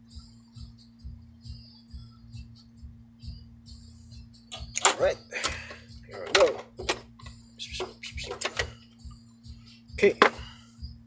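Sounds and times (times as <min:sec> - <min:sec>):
faint background music: 0:00.0 - 0:11.0
soldering iron rattling in holder: 0:04.6 - 0:07.3.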